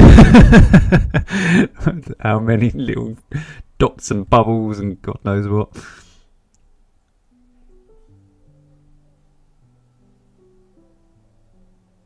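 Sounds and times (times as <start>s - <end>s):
man laughing loudly: 0.0s - 3.0s
breathy exhale: 5.8s - 6.4s.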